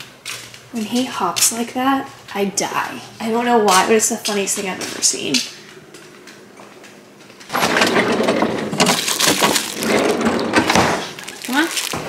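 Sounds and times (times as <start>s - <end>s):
plastic bag crinkling: 8.7s - 12.0s.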